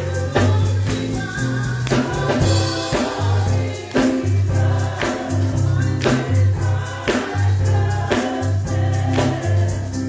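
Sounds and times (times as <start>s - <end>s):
gospel choir singing: 0.0s - 10.0s
steady beat: 1.8s - 10.0s.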